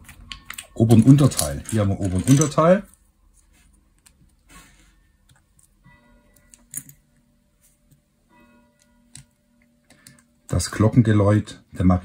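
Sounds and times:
faint church bells ringing: 0:05.8 - 0:07.5, 0:08.1 - 0:12.0.

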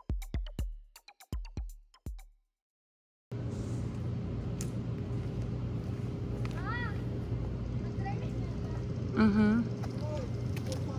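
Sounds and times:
low hum: 0:03.3 - 0:10.9.

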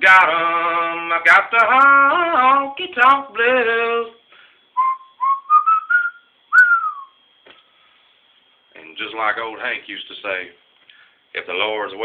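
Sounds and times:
person whistling melody: 0:04.7 - 0:07.2.

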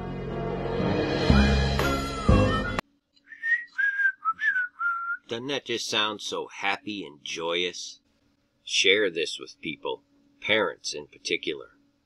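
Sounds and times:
person whistling a tune: 0:02.0 - 0:05.2.

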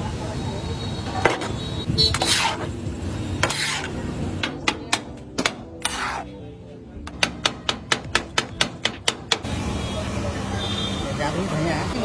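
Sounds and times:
street background noise: 0:00.0 - 0:12.0
cleaver chopping on metal griddle: 0:02.1 - 0:02.7, 0:03.4 - 0:06.3, 0:07.0 - 0:09.5.

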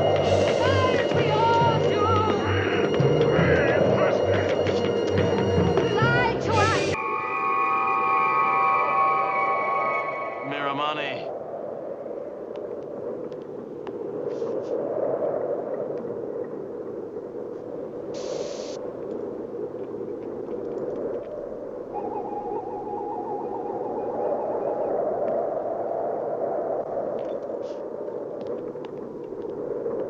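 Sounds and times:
warbling electronic scanner tone: 0:00.0 - 0:11.2
short hiss: 0:18.2 - 0:18.8.

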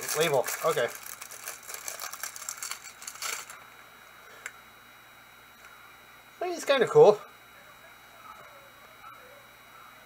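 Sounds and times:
packaging crackling and rustling: 0:00.0 - 0:03.6.

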